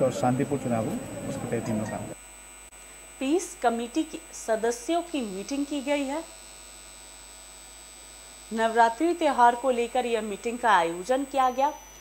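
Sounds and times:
electrical mains hum: 0.0 - 12.0
woman's voice: 3.2 - 6.4, 8.5 - 11.8
faint high-pitched whine: 8.0 - 12.0.

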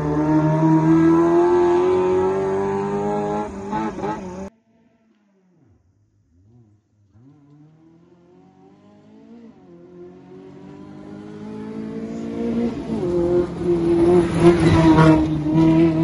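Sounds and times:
rally car engine approaching: 0.0 - 16.0.

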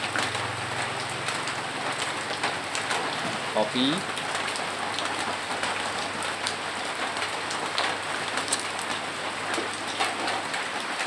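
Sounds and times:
rain on a corrugated roof: 0.0 - 11.0.

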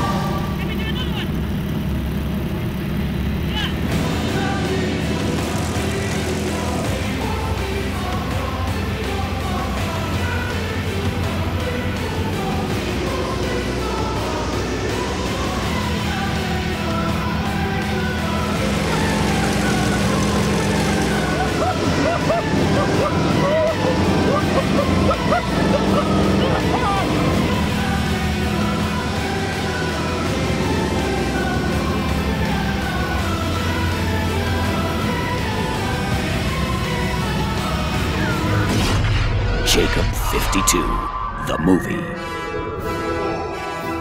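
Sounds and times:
propeller plane engine droning: 0.0 - 38.8
passenger high-pitched cries: 18.8 - 31.6
vocal whoops: 21.2 - 27.1.

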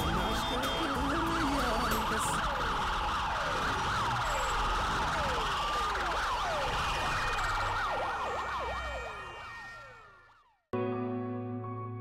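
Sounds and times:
sirens wailing: 0.0 - 10.6.

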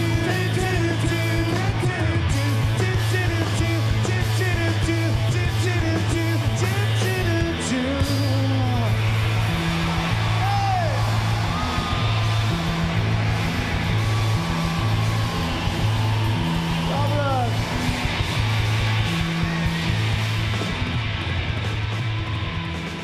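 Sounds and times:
person singing: 0.0 - 9.0
electric guitar: 0.0 - 23.0.

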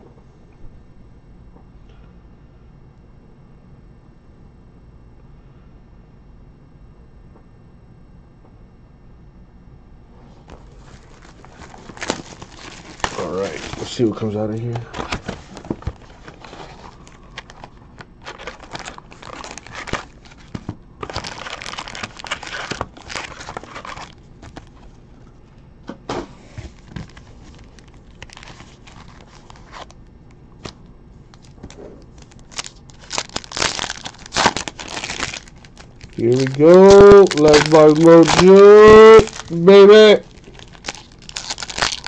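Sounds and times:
foil wrappers crinkling: 10.5 - 25.0, 26.6 - 30.0, 30.6 - 42.0.

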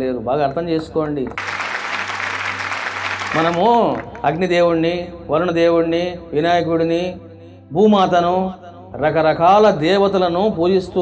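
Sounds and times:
audience applause: 1.4 - 4.2.

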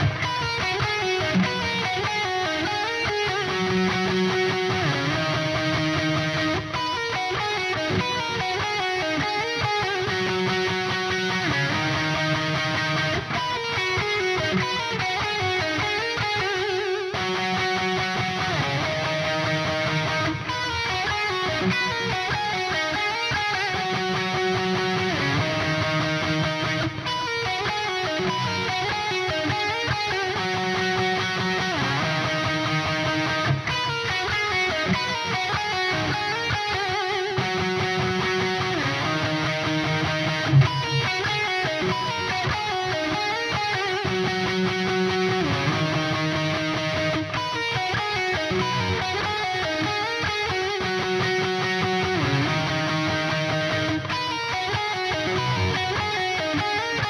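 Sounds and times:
electric guitar riff: 0.0 - 57.0.

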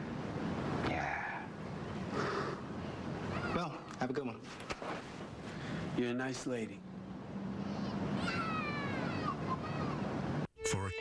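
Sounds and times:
high-pitched whining cry: 7.6 - 10.1.

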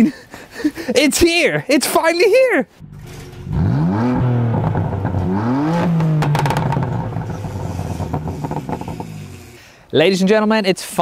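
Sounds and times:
car engine revving: 2.8 - 9.6.

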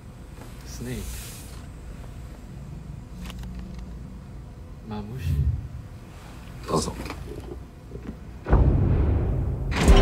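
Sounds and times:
deep bass rumble: 5.2 - 5.9.

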